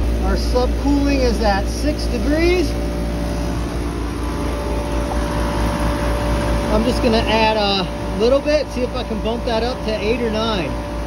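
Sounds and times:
compressor low hum: 0.0s - 11.0s
condenser fan whoosh: 0.0s - 11.0s
steady tone: 0.0s - 11.0s.

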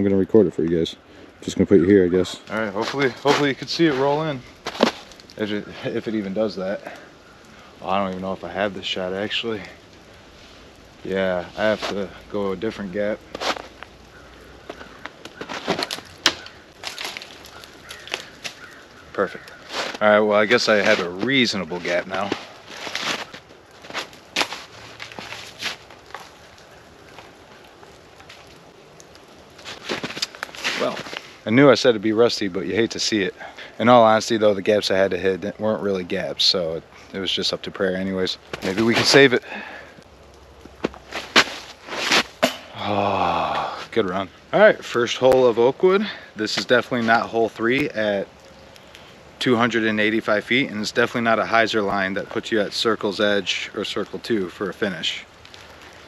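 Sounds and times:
twigs snapping: 2.4s - 5.8s, 6.5s - 31.4s, 38.4s - 44.2s, 46.5s - 49.2s, 55.2s - 56.0s
footsteps crunching in snow: 2.7s - 5.3s, 13.2s - 13.9s, 14.6s - 26.4s, 29.6s - 31.3s, 40.6s - 42.4s
person drawn-out vocal sound: 42.7s - 43.8s.

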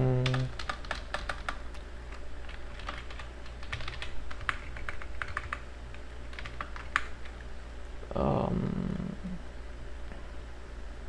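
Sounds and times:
typing on computer keyboard: 0.2s - 7.4s.

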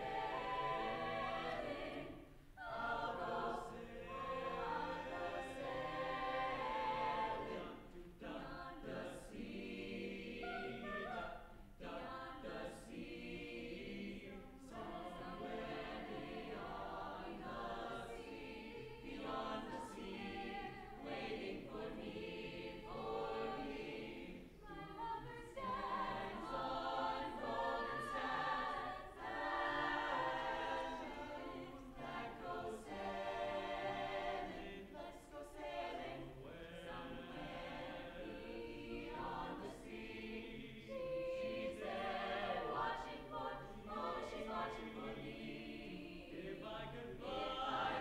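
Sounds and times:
choir singing in harmony: 0.0s - 48.0s.

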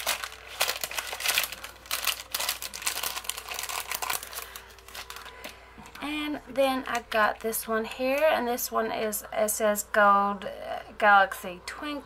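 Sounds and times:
plastic bag crinkling: 0.0s - 6.1s.

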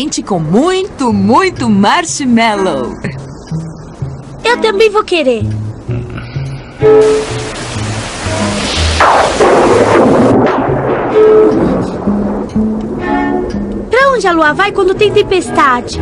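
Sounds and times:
soft instrumental music: 0.0s - 9.0s, 10.4s - 16.0s
rush of rain: 6.4s - 12.5s
thunderclap: 8.4s - 13.1s.

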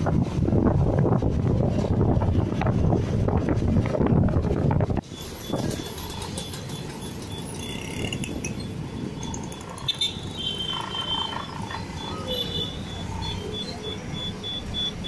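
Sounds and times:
bus engine and road rumble: 0.0s - 15.0s.

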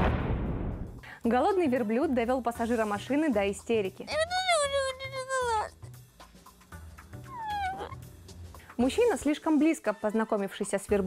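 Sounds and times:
background music with low beat: 0.2s - 11.0s
boy crying and wailing: 4.1s - 5.9s, 7.3s - 8.0s.

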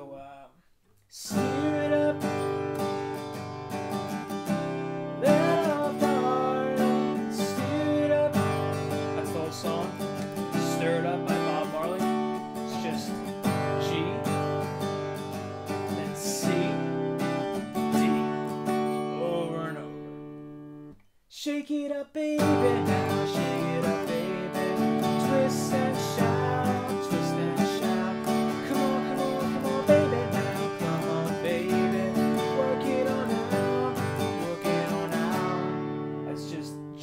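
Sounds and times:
person singing: 1.2s - 2.7s, 5.2s - 20.0s, 21.4s - 37.0s
acoustic guitar strumming: 1.2s - 21.1s, 22.2s - 37.0s.

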